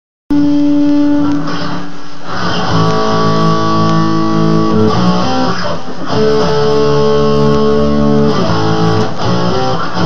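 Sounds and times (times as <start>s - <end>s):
electric guitar chord ringing: 0.3s - 10.0s.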